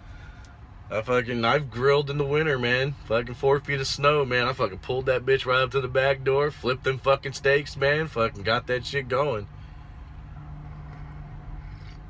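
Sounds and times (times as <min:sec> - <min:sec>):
diesel truck engine idling: 0:00.0 - 0:12.0.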